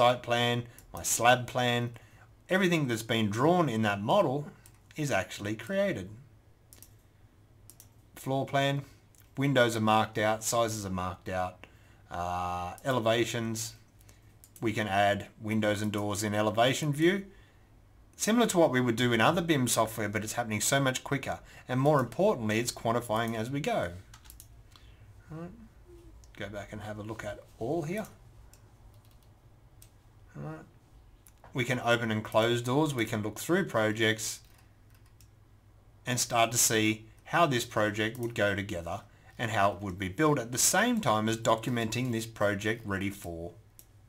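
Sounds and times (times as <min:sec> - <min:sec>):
man speaking: 0:00.0 - 0:06.3, 0:08.2 - 0:13.8, 0:14.6 - 0:17.3, 0:18.2 - 0:24.1, 0:25.2 - 0:28.2, 0:30.3 - 0:30.8, 0:31.5 - 0:34.4, 0:36.0 - 0:43.6
mouse and keyboard clicks: 0:06.7 - 0:07.0
computer mouse clicks: 0:06.7 - 0:08.0, 0:24.1 - 0:24.9, 0:28.0 - 0:30.0, 0:34.4 - 0:35.4.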